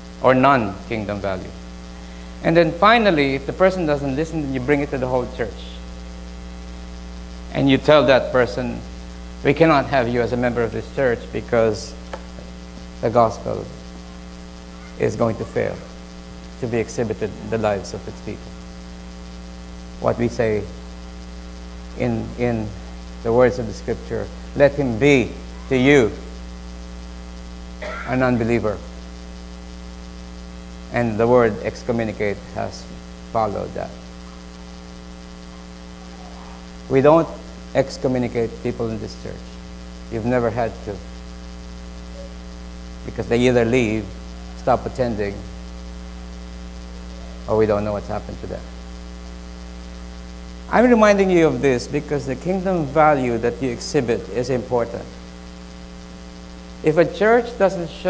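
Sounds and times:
electrical mains hum: 0.0s - 58.0s
man speaking: 0.2s - 1.6s, 2.4s - 5.8s, 7.5s - 12.0s, 13.0s - 13.8s, 14.7s - 16.0s, 16.6s - 18.6s, 20.0s - 20.8s, 21.9s - 26.3s, 28.1s - 29.0s, 30.9s - 34.1s, 36.0s - 41.1s, 43.0s - 45.6s, 47.4s - 48.8s, 50.7s - 55.2s, 56.8s - 58.0s.

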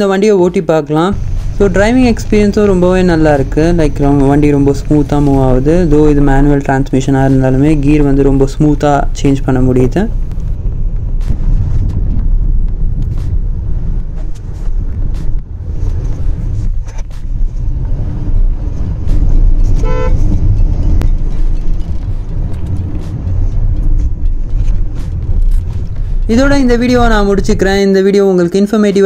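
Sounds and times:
road and engine rumble in car: 1.0s - 27.8s
vehicle horn toot: 19.8s - 20.2s.

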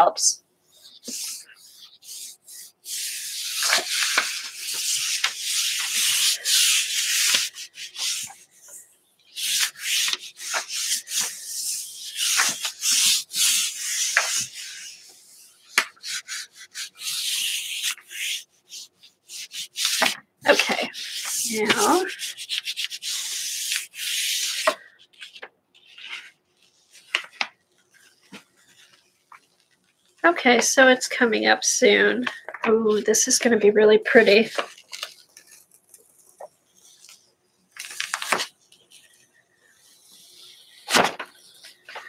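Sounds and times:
hands rubbing paper: 0.1s - 42.0s.

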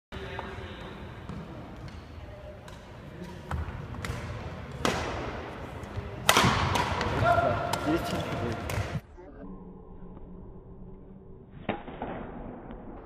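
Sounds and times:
racket hitting shuttlecock: 2.6s - 5.4s, 6.2s - 9.0s.

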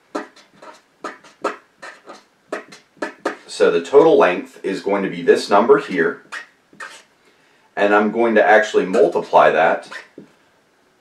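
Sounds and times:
marker writing on paper: 0.0s - 3.5s, 5.9s - 7.1s, 8.9s - 10.3s.

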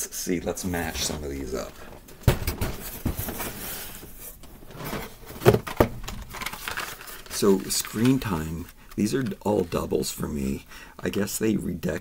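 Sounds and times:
plastic packaging rustling and clacking: 0.8s - 9.9s.

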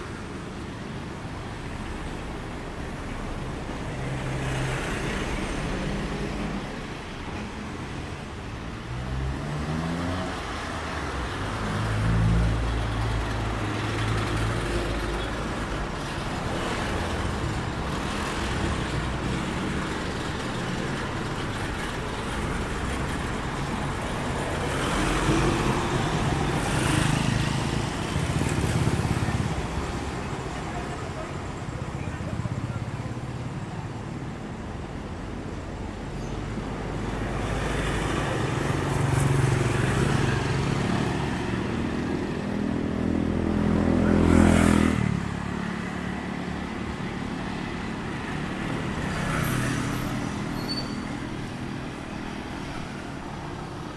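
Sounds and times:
cars passing by: 0.0s - 53.9s.

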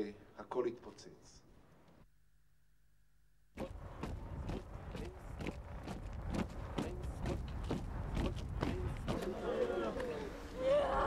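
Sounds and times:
outdoor crowd noise: 3.6s - 11.0s.

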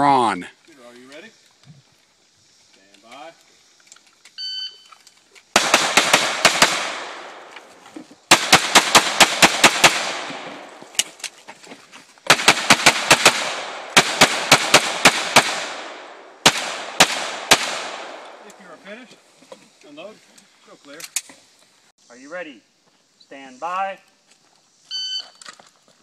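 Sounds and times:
rapid pistol fire: 5.6s - 7.4s, 8.3s - 10.7s, 12.3s - 18.2s
gunshot echo: 5.6s - 7.5s, 8.3s - 10.8s, 12.3s - 18.4s.

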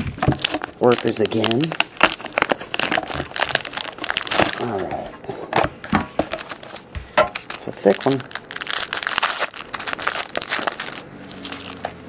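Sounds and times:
foil wrapper crinkling and tearing: 0.0s - 5.0s, 6.3s - 12.0s.

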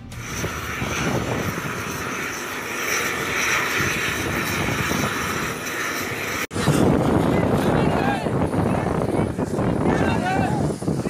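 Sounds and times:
helicopter turbine engine whine: 0.0s - 11.0s.

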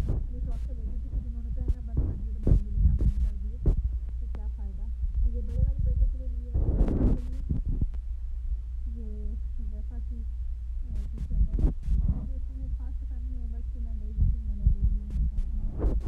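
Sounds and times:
low rumble on microphone: 0.0s - 16.0s.

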